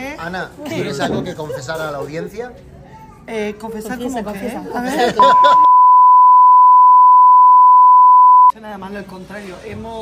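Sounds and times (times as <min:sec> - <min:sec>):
censor bleep tone: 0:05.2 - 0:08.5.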